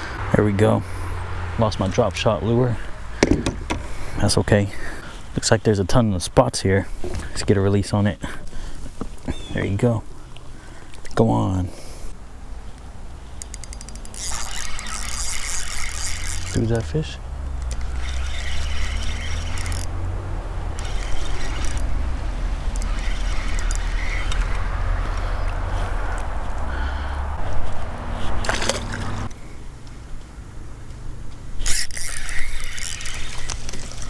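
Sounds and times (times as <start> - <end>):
fishing reel gears whirring: 13.4 - 25.6, 31.6 - 34.0.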